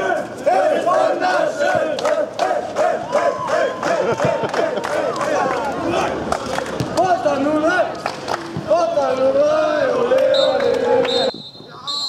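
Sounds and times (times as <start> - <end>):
crowd chanting: 0.0 - 6.7.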